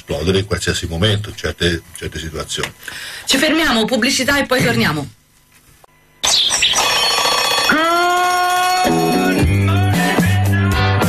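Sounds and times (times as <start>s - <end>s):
alarm clock bell ringing: 6.2s - 9.4s.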